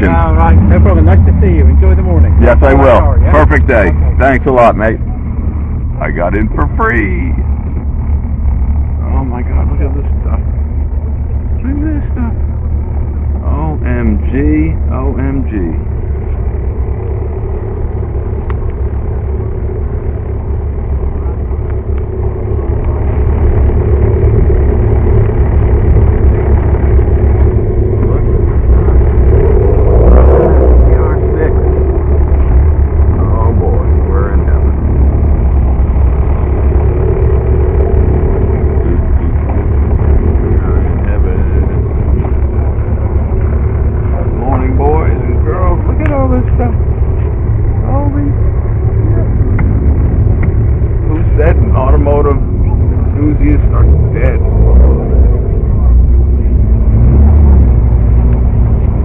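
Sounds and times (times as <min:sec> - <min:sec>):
voices: 0:00.0 - 0:08.2, 0:08.8 - 0:57.1
motorcycle engine rumbling: 0:00.0 - 0:59.0.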